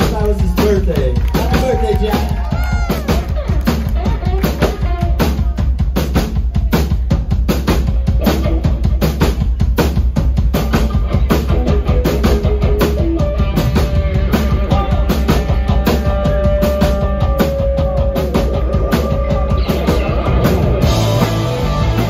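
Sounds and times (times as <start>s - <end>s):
drum kit beat: 0.0s - 22.0s
electric guitars: 1.2s - 5.5s, 10.5s - 22.0s.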